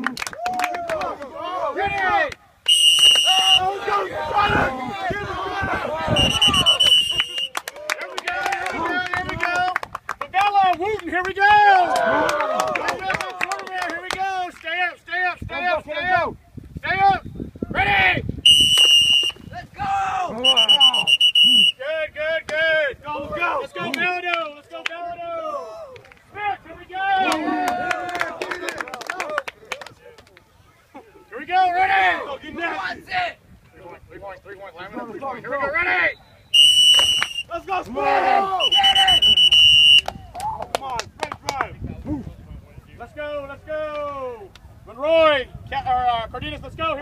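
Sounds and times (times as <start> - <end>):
players shouting: 0.4 - 9.7, 17.7 - 29.7, 31.0 - 33.4, 34.8 - 41.0
high whistle blast: 2.7 - 3.6, 6.2 - 7.6, 18.4 - 19.5, 20.4 - 21.8, 36.0 - 37.5, 38.6 - 40.1.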